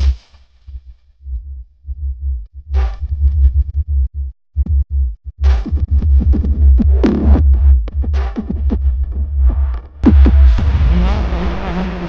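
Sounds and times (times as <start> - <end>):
deep sub-bass pulses: 0.0 - 12.0
bright synth sweep: 10.0 - 12.0.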